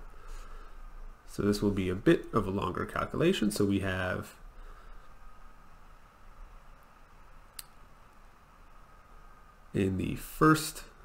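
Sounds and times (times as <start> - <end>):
faint hiss: 0.0 - 11.0
faint steady hum: 0.0 - 11.0.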